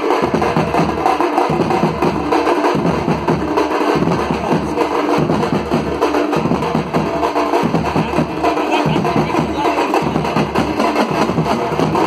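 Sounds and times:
bass drum beating: 0:00.0 - 0:12.0
snare drums: 0:00.0 - 0:12.0.

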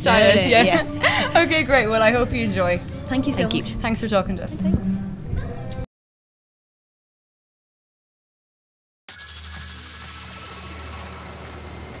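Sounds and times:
low engine hum: 0:09.4 - 0:12.0.

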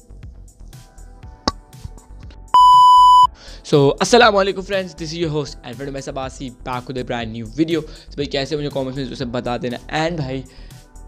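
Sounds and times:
background music with light beat: 0:00.0 - 0:11.0
loud steady high beep: 0:02.6 - 0:03.3.

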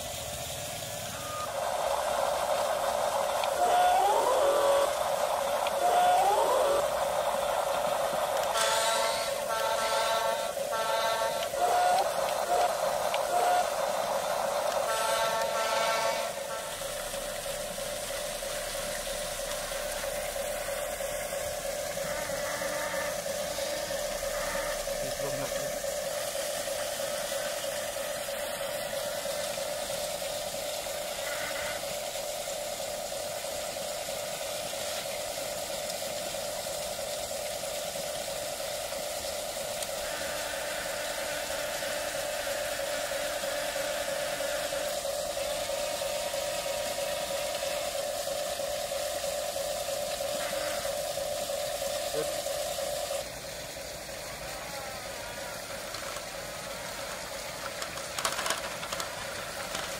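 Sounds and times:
faint hiss: 0:00.0 - 0:59.9
small electric motor humming: 0:01.0 - 0:59.9.

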